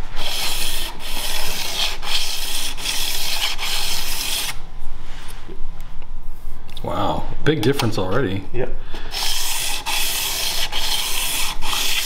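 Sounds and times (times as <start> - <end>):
steel rubbed on sandpaper: 0.2 - 4.6, 9.1 - 12.0.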